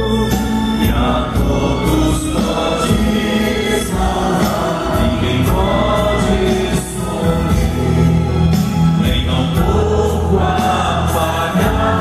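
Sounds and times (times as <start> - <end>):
band with heavy bass: 0.0 - 12.0
choir singing gospel music: 0.0 - 12.0.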